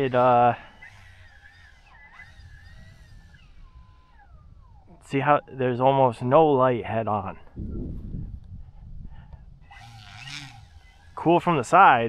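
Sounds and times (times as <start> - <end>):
model airplane engine whine: 0.0 - 6.8, 7.4 - 12.0.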